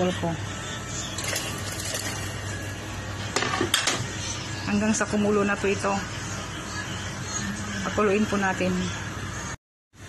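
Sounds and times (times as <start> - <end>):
water boiling in a pot: 1.0 - 3.0.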